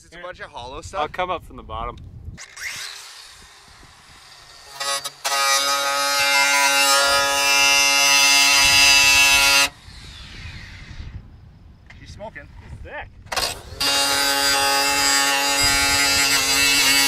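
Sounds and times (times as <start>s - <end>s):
angle grinder cutting metal: 2.4s - 10.9s, 13.3s - 17.0s.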